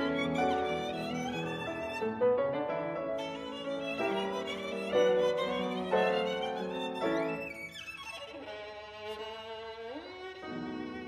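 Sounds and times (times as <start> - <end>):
piano accompaniment: 0.0 - 8.4
violin playing: 0.0 - 11.0.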